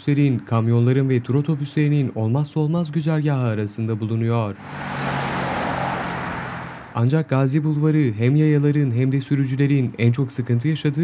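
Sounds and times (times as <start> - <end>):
passing vehicles: 0.0 - 8.3.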